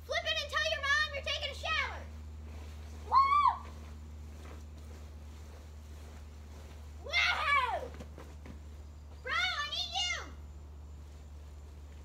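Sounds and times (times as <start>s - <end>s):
child's high-pitched call: 9.2s - 10.4s.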